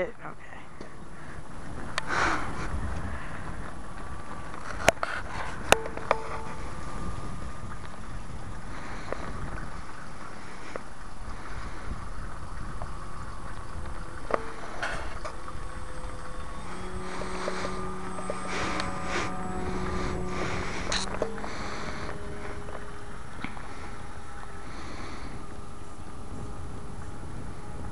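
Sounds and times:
model plane motor droning: 0:00.0 - 0:27.9
wind rumbling on microphone: 0:00.0 - 0:27.9.

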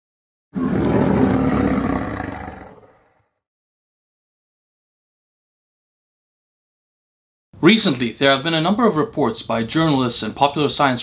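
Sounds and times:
lion roaring: 0:00.6 - 0:03.4.

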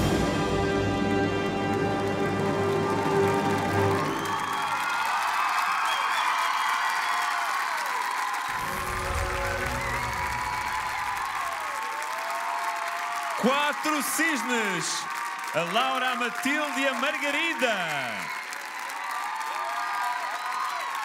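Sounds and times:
ballet music: 0:00.0 - 0:04.2
audience applauding and cheering: 0:00.0 - 0:21.0.

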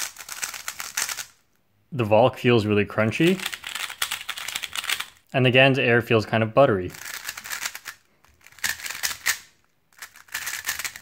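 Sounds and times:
puzzle cube layers clicking: 0:00.0 - 0:01.4, 0:03.2 - 0:05.2, 0:06.9 - 0:11.0.

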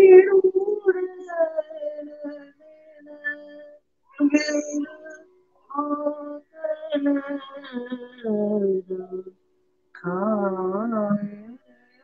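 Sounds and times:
man singing a wordless vowel: 0:10.0 - 0:12.0.

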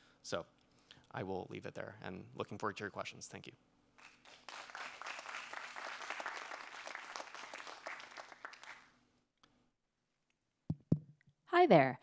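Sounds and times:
audience applauding: 0:04.0 - 0:08.9.

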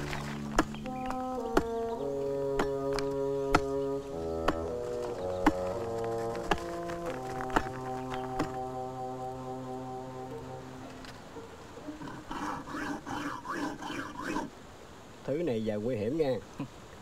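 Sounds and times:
film score chord: 0:00.0 - 0:12.0
low male speech: 0:15.2 - 0:16.7.

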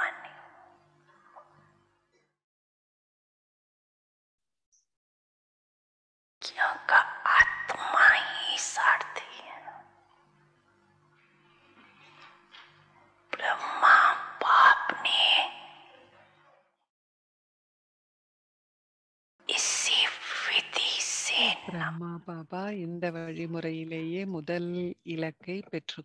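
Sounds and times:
person whispering: 0:00.0 - 0:00.6, 0:06.4 - 0:09.9, 0:13.4 - 0:16.0, 0:19.5 - 0:22.0
woman speaking softly: 0:19.5 - 0:26.0.

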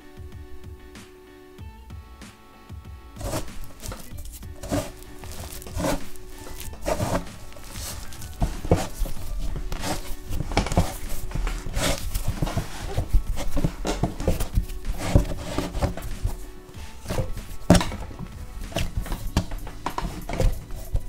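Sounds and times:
soft background music: 0:00.0 - 0:21.0
hands kneading dough: 0:03.2 - 0:21.0
table knocking: 0:03.2 - 0:21.0.

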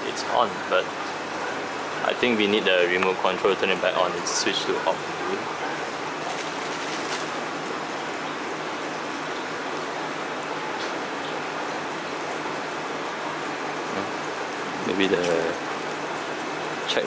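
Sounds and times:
splashing running water: 0:00.0 - 0:17.0.

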